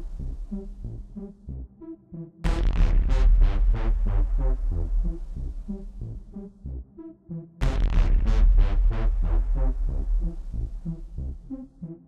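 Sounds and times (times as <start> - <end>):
heavy pulsing bass: 2.5 - 6.6, 7.6 - 11.6.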